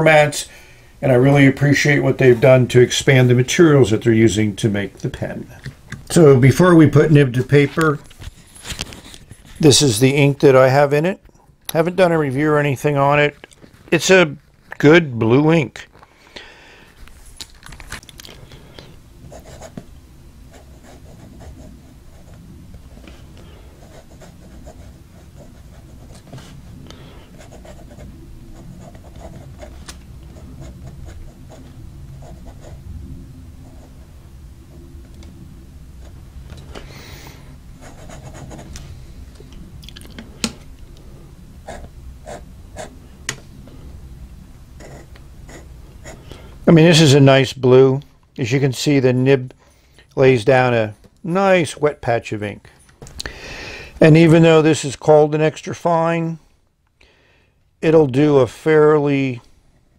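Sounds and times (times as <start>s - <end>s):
low steady rumble: 18.1s - 51.8s
pen nib scratching paper: 20.5s - 22.4s, 23.8s - 26.6s, 27.3s - 32.8s, 37.8s - 38.7s, 44.8s - 46.2s.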